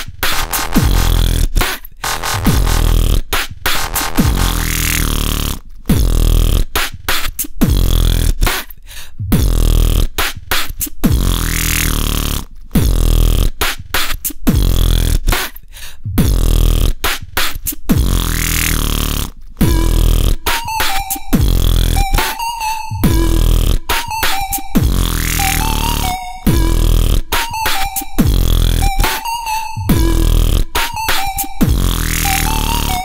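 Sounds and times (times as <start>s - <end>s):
dubstep electronic music: 0.0s - 6.9s, 17.9s - 19.0s, 19.6s - 33.0s.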